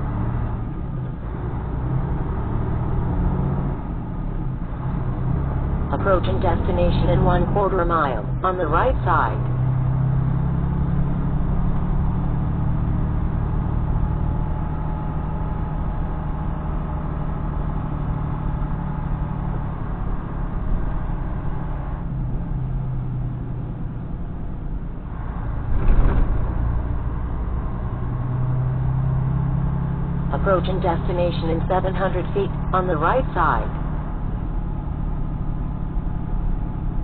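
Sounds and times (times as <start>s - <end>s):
truck diesel engine droning: 0.0s - 37.0s.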